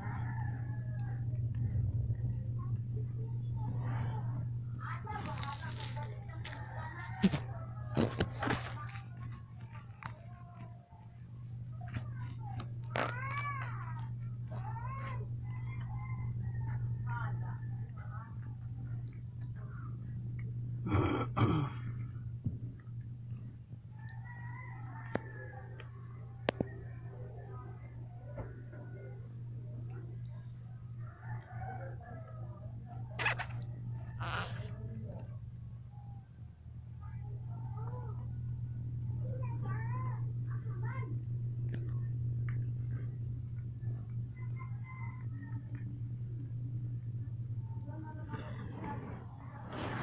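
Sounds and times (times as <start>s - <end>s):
steady low hum: 0.0s - 50.0s.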